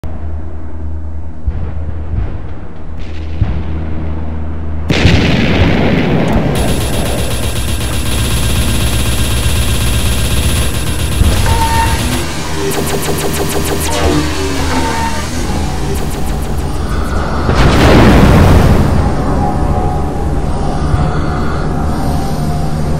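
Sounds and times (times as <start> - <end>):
low music drone: 0.0 - 22.9
booms: 1.4 - 19.5
rapid gunfire: 4.9 - 18.9.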